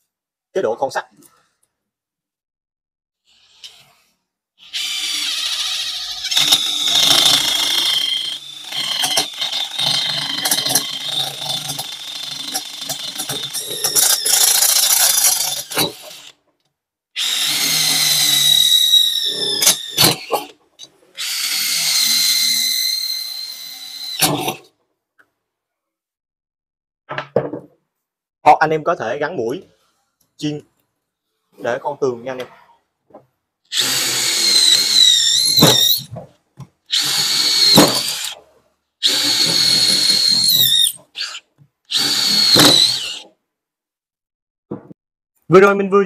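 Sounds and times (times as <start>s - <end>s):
drill bit cutting metal whine: 4.7s - 16.3s, 17.2s - 20.5s, 21.2s - 24.5s, 33.7s - 36.1s, 36.9s - 38.4s, 39.0s - 43.2s.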